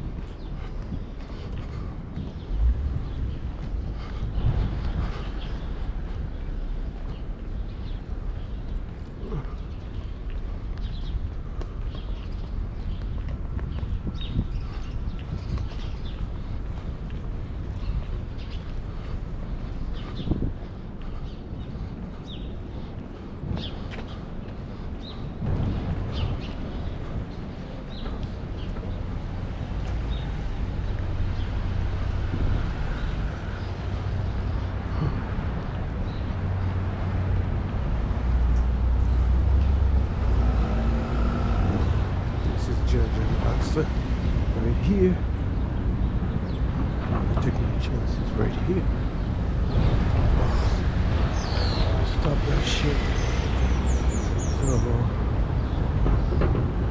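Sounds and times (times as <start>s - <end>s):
cars passing: 0.0s - 56.9s
low traffic rumble: 0.0s - 56.9s.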